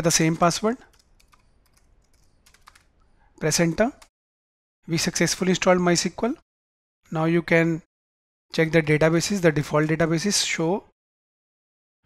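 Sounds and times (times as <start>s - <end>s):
faint keyboard keystrokes: 0.3s - 3.0s.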